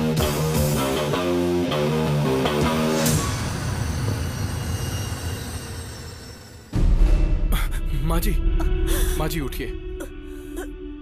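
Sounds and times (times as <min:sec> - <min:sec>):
low rumbling drone: 0:06.7 - 0:11.0.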